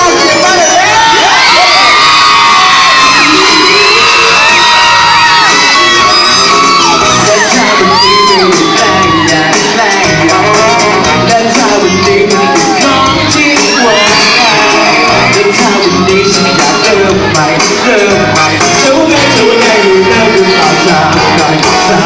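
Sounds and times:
fans screaming and cheering: 0.0 - 22.0
live pop music: 0.0 - 22.0.

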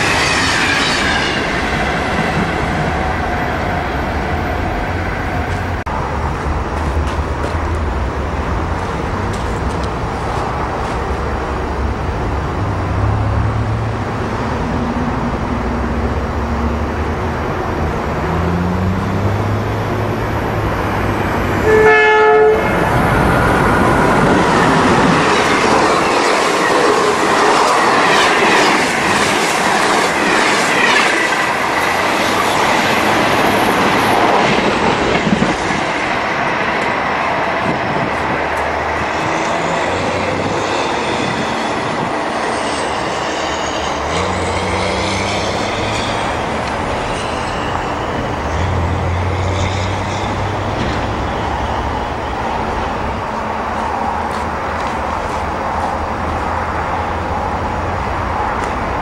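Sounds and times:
train wheels clattering on rails: 5.4 - 11.2, 23.1 - 43.3, 43.9 - 56.5
train horn blast: 21.6 - 22.9.

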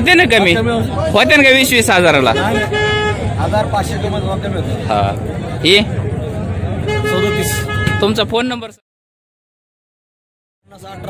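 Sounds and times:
men talking in a crowd: 0.0 - 8.8, 10.6 - 11.0.

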